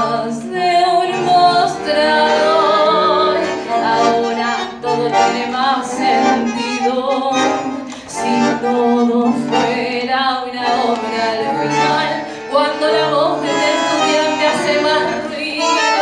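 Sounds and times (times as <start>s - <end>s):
bandoneon melody: 0.0s - 16.0s
tango ensemble playing: 0.0s - 16.0s.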